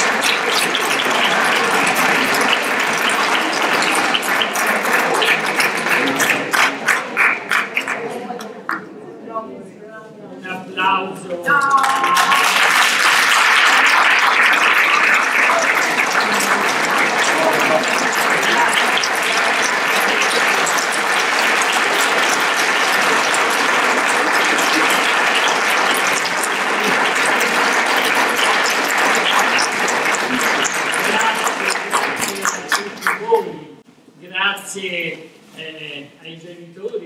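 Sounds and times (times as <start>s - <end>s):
audience applause: 0.0s - 8.3s, 11.5s - 33.4s.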